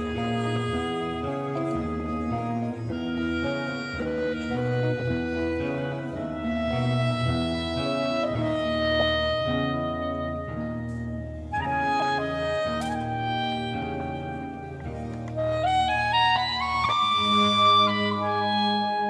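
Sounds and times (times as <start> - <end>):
string-like melody notes: 0.0 - 19.0.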